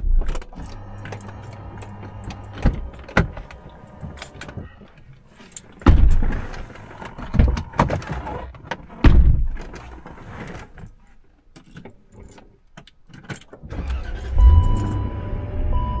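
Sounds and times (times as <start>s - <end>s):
knocks rattles and jangles: 0.1s - 8.2s
vehicle thumping over ruts: 5.8s - 6.7s, 9.0s - 9.7s.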